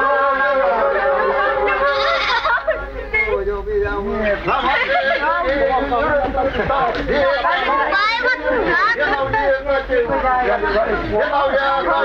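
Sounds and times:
voices singing held notes: 0.0 - 3.6.

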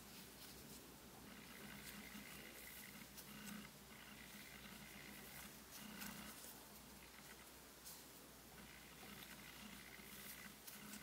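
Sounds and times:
crochet hook scratching and ticking: 1.3 - 7.5, 8.6 - 11.0.

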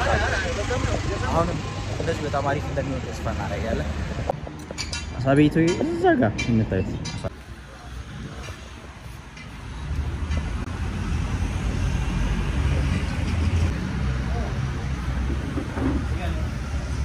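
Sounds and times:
street traffic: 0.0 - 17.0.

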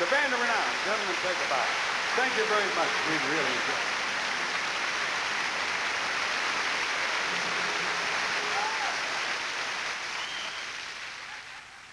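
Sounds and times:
audience applauding: 0.0 - 11.9
faint whistles or calls: 10.1 - 10.8.

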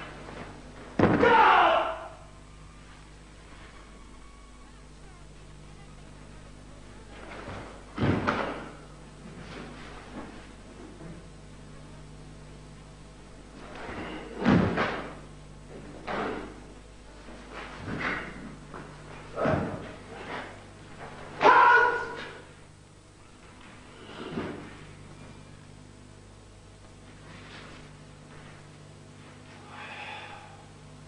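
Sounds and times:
steady low hum: 0.0 - 31.0
landing thud: 0.9 - 1.5, 7.3 - 8.8, 13.6 - 15.2
short sharp shout: 1.1 - 2.2, 21.4 - 22.4.

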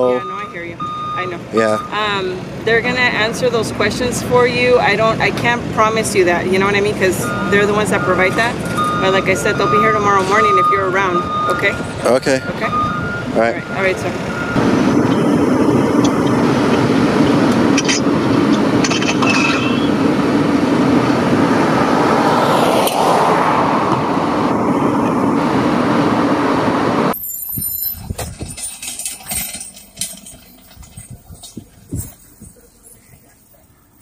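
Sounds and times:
vehicle passing: 0.0 - 27.1
street traffic: 0.0 - 34.0.

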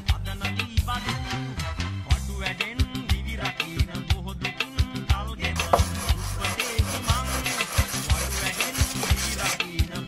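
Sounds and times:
background music with beat: 0.0 - 10.0
blade scraping on sharpening stone: 5.6 - 9.6.

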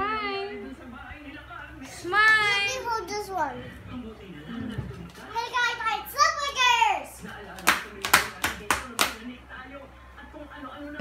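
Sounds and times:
sharp hand claps: 7.6 - 9.2.

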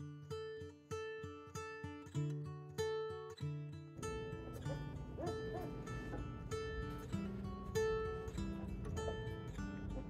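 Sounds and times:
acoustic guitar music: 0.0 - 10.0
puppies whimpering: 4.4 - 7.0.

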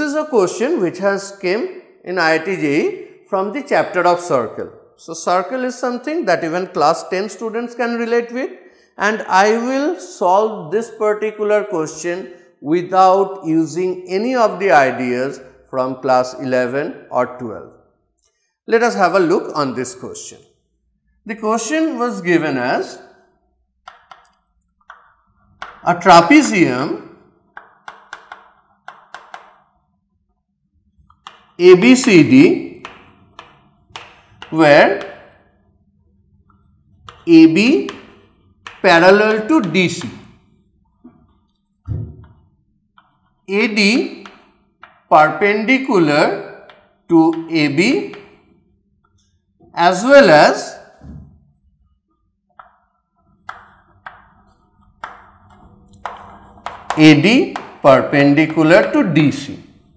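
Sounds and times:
chalk tapping and scratching on board: 23.8 - 29.9, 30.9 - 45.1, 46.6 - 49.4, 52.5 - 59.0.

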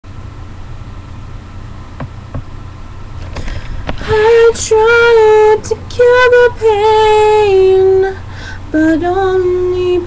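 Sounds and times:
low outdoor rumble: 0.1 - 10.0.

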